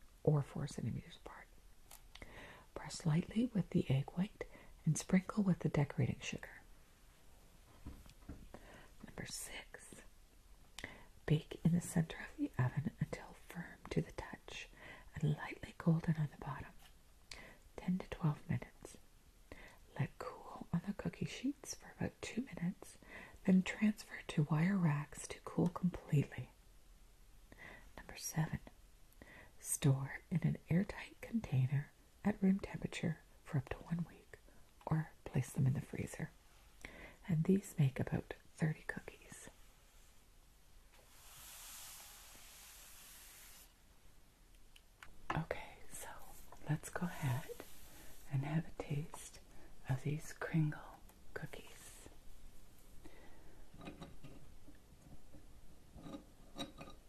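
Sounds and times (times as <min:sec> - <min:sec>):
woman speaking softly: 0:00.2 - 0:01.5, 0:02.7 - 0:06.6, 0:09.0 - 0:10.1, 0:11.2 - 0:16.8, 0:17.8 - 0:19.0, 0:19.9 - 0:26.5, 0:28.0 - 0:28.7, 0:29.6 - 0:36.4, 0:37.2 - 0:39.6, 0:45.3 - 0:52.1
woman whispering: 0:00.2 - 0:01.6, 0:02.3 - 0:06.7, 0:08.6 - 0:10.1, 0:10.8 - 0:19.0, 0:19.6 - 0:26.5, 0:27.6 - 0:28.7, 0:29.6 - 0:39.7, 0:45.3 - 0:52.2.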